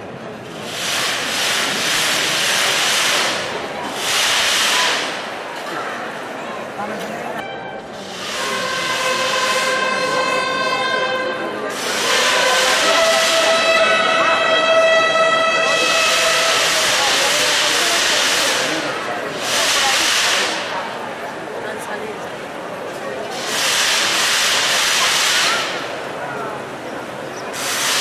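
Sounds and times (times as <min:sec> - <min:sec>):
loud noisy bursts: 0:00.0 - 0:06.4, 0:07.9 - 0:21.5, 0:22.8 - 0:28.0
brass bugles holding long notes: 0:08.2 - 0:17.7.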